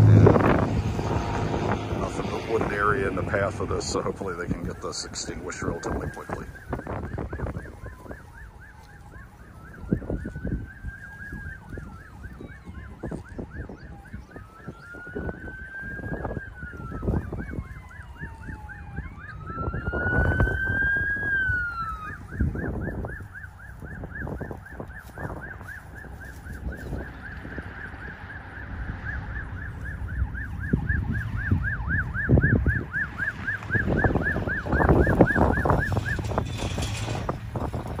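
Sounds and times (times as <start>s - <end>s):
siren in fast yelp: 0.0s - 38.0s
siren wailing: 0.0s - 38.0s
wind buffeting microphone: 0.0s - 38.0s.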